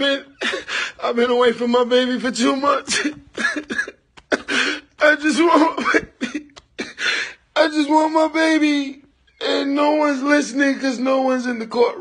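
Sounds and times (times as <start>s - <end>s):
man sobbing: 0.0s - 1.4s, 2.7s - 7.6s
ragged breathy gasp: 6.8s - 7.5s.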